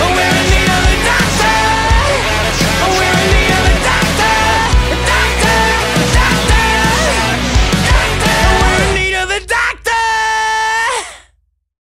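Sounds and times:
man singing high screamed note: 0:04.4 - 0:11.1.

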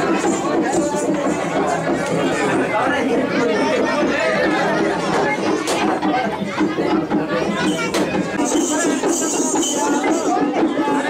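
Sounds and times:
babble of voices: 0:00.0 - 0:11.0.

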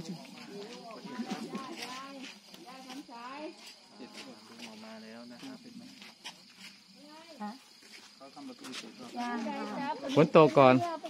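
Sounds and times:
crickets chirring: 0:00.0 - 0:11.0
people talking quietly: 0:00.0 - 0:11.0.

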